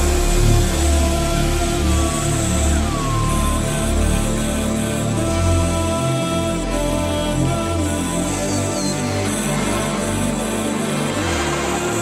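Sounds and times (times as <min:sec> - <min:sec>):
phonk music with heavy bass: 0:00.0 - 0:12.0.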